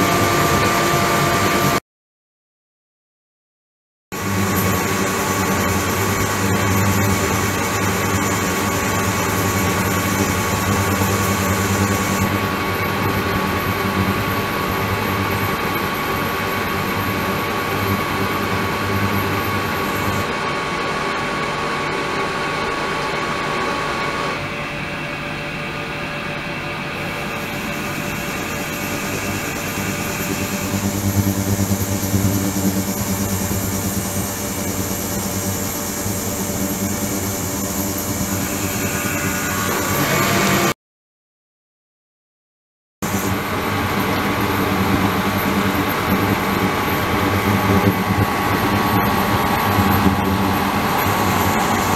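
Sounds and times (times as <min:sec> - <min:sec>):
thin high whine: 0:04.2 - 0:40.8, 0:43.0 - 0:51.9.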